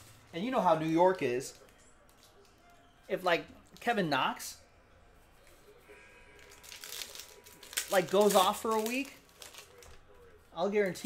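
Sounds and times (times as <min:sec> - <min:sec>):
foil pack crinkling: 0:06.4 - 0:10.0.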